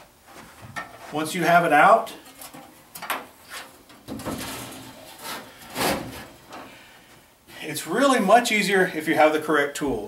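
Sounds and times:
sheet metal scraping and knocking: 2.4s - 6.7s.

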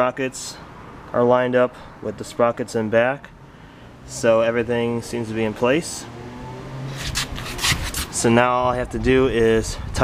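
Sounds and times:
rubbing and scraping noises: 6.8s - 8.4s.

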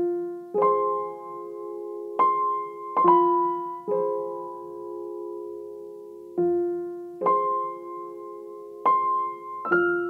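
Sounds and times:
piano chord ringing: 0.0s - 10.0s.

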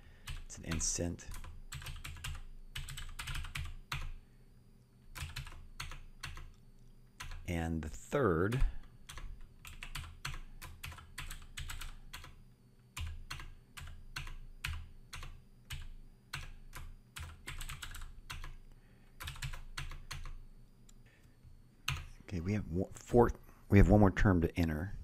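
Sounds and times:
typing on computer keyboard: 0.2s - 4.2s, 5.1s - 6.6s, 7.2s - 7.5s, 8.5s - 20.4s, 21.8s - 22.1s.

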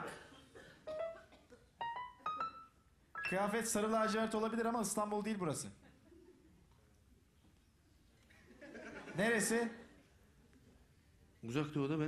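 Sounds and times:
piano sting: 3.2s - 4.2s.

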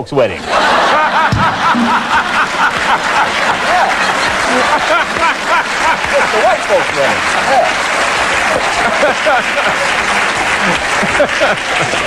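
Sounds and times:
audience laughing: 0.4s - 12.0s.

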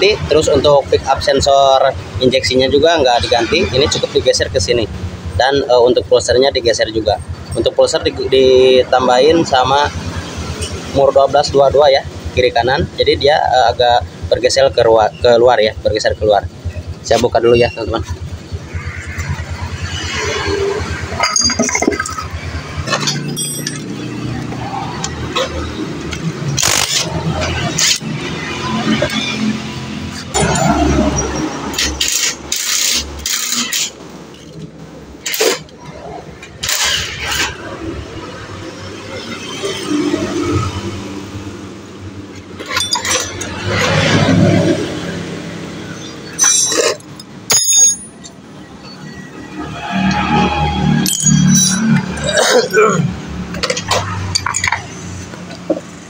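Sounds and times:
metal tools clinking: 21.1s - 24.5s, 26.6s - 28.5s, 30.3s - 34.6s, 42.6s - 44.1s, 46.0s - 49.2s, 51.0s - 52.8s, 53.5s - 55.1s.

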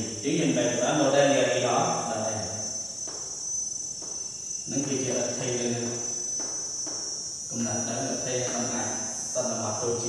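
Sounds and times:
shrill insect chorus: 0.0s - 10.0s.

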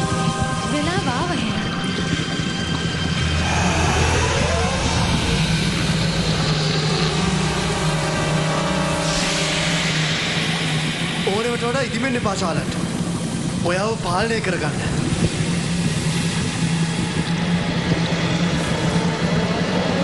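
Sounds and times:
dramatic soundtrack drone: 0.0s - 20.0s
whoosh: 3.1s - 13.6s.

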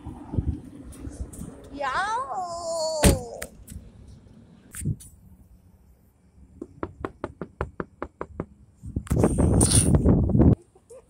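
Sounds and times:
knock on window: 6.6s - 8.5s
fingertips tapping on window glass: 6.6s - 8.6s.

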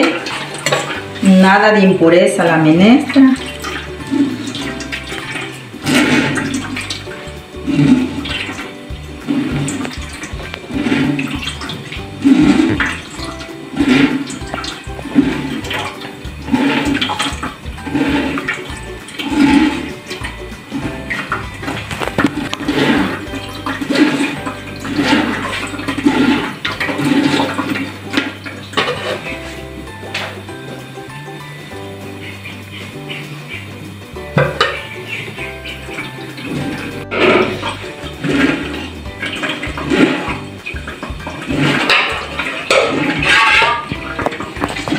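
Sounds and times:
metal spoon stirring liquid: 0.0s - 1.4s, 3.0s - 30.3s, 34.4s - 44.9s
liquid sloshing and trickling: 0.0s - 1.5s, 3.0s - 30.8s, 34.4s - 44.9s.

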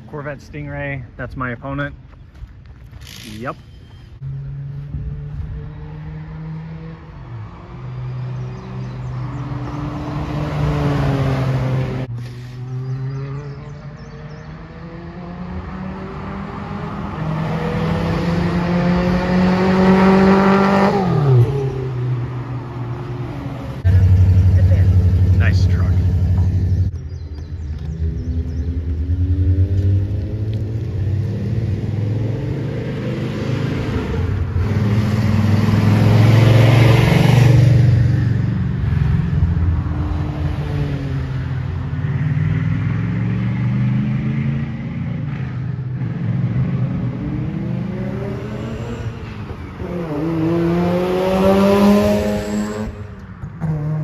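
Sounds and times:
race cars accelerating past: 4.2s - 27.0s, 27.8s - 54.0s
low engine drone: 23.7s - 30.9s.

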